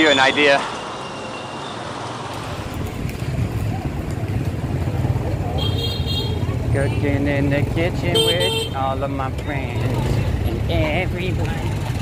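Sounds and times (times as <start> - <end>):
motorbike engines rumbling: 2.3 - 12.0.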